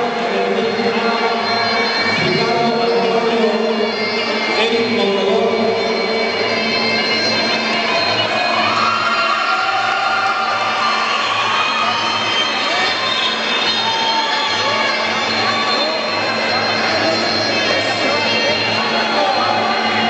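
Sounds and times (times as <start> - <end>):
voices in a hall: 0.0 - 20.0.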